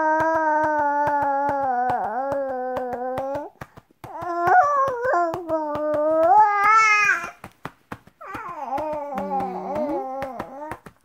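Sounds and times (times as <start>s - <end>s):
baby whining: 0.0s - 7.5s, 8.2s - 10.9s
quick even pats: 0.1s - 11.0s.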